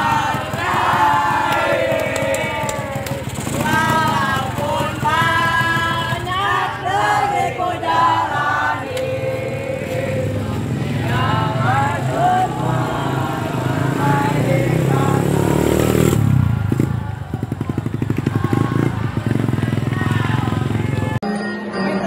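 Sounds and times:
motorcycle engine: 0.0s - 21.2s
group of people singing or calling: 0.0s - 22.0s.

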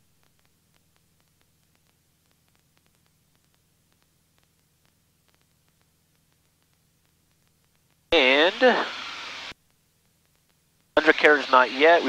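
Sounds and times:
man speaking: 8.2s - 8.9s, 11.0s - 12.0s
speech over headset intercom: 8.2s - 8.9s, 11.0s - 12.0s.

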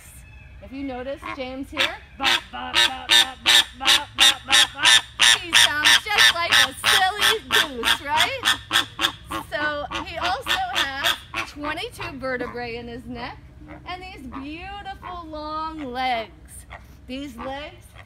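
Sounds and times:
flamingo honking: 0.0s - 18.0s.

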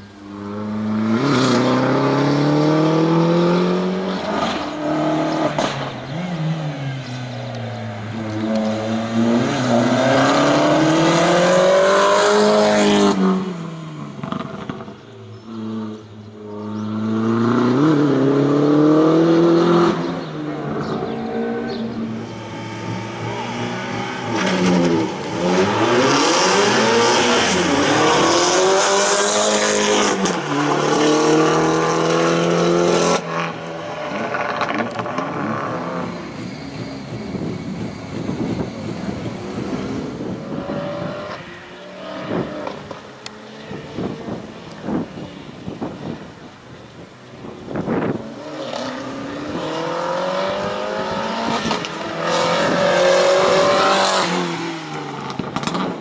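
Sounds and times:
race car engine revving: 0.0s - 46.2s, 47.6s - 56.0s.

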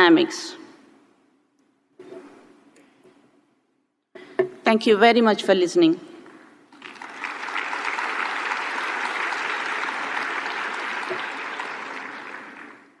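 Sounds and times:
audience applauding: 6.7s - 13.0s.

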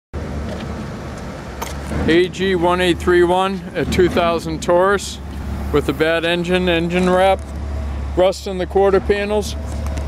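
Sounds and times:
low rumble and hiss: 0.9s - 9.6s.

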